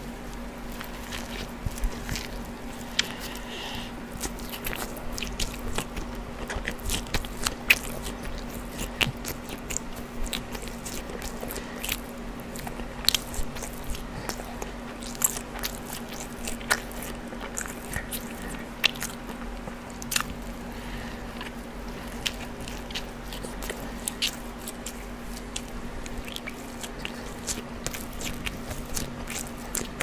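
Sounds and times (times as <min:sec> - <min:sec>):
close chewing with wet mouth clicks: 0:00.0 - 0:30.0.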